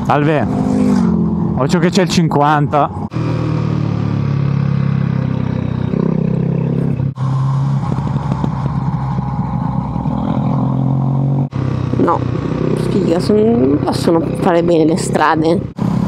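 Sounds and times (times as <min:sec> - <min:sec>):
motorcycle engine running: 0:00.0 - 0:16.0
wind and road noise: 0:00.0 - 0:16.0.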